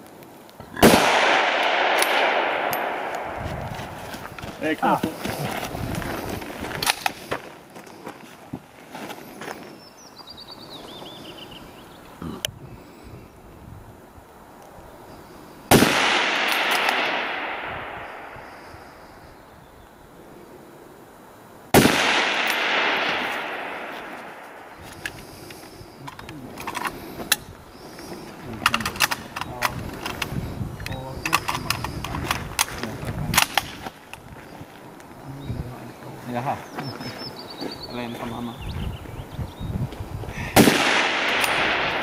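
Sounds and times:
rifle shots with echo: 0:00.8 - 0:03.5, 0:15.7 - 0:18.6, 0:21.8 - 0:24.7, 0:40.6 - 0:42.0
clicks and knocks of handled rifle: 0:06.6 - 0:07.4, 0:24.8 - 0:27.4, 0:28.6 - 0:34.3.

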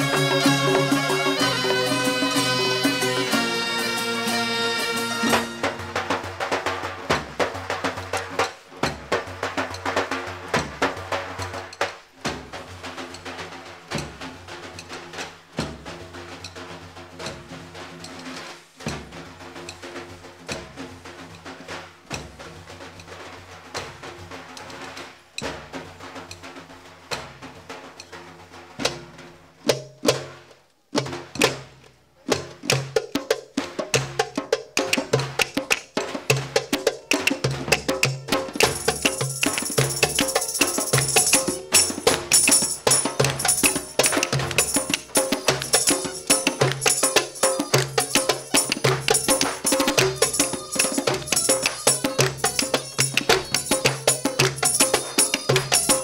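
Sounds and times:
frame drums beaten fast: 0:00.0 - 0:56.0.

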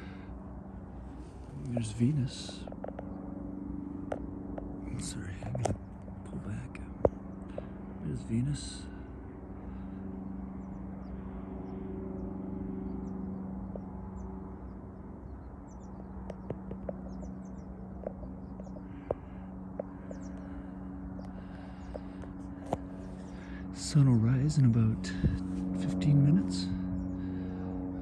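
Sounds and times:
steady low hum: 0:00.0 - 0:28.0.

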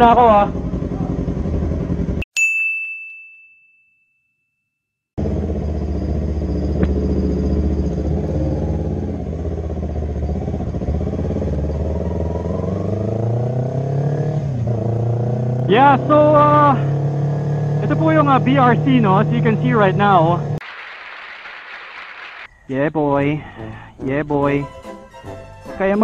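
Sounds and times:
motorcycle engine idling: 0:00.0 - 0:02.2, 0:05.2 - 0:12.5
bright ding: 0:02.4 - 0:04.5.

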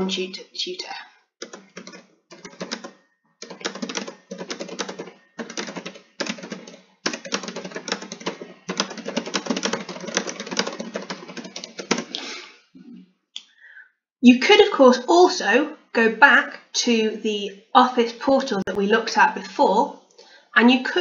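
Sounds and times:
computer keyboard typing: 0:01.4 - 0:12.2.

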